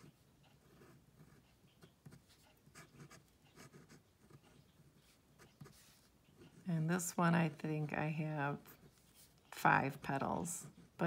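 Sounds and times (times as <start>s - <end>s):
pen scratching on paper: 0.0s - 6.6s.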